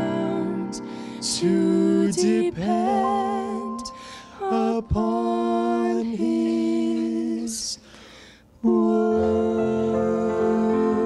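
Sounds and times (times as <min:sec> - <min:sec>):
vocal duet holding a note: 0:00.0 - 0:07.7.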